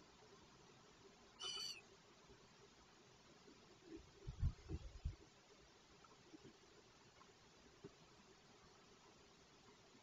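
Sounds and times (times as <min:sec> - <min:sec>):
owl chick call: 0:01.4 - 0:01.8.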